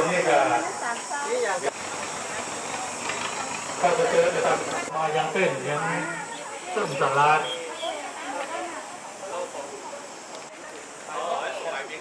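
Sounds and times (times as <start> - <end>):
faint voices: 0.0 - 12.0
outdoor background hiss: 0.0 - 12.0.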